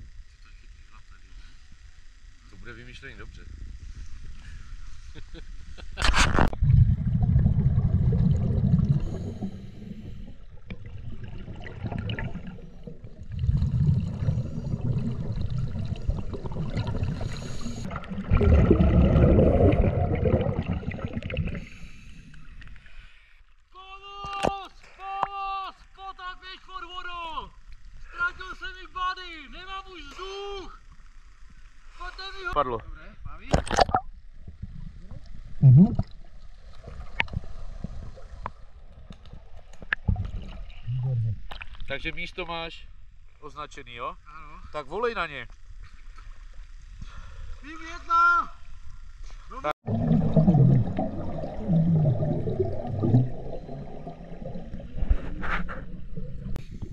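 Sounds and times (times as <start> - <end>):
underwater exhaust bubbles rumbling: 6.4 - 22.4, 33.6 - 41.8, 49.8 - 56.9.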